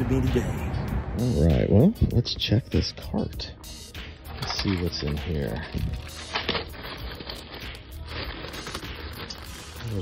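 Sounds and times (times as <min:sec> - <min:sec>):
plastic bags crinkling: 0:04.3 - 0:10.0.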